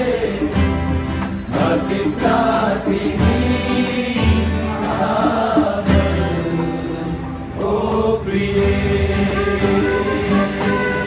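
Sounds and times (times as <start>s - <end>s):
group singing pop song in chorus: 0.0s - 11.0s
strummed acoustic guitars: 0.0s - 11.0s.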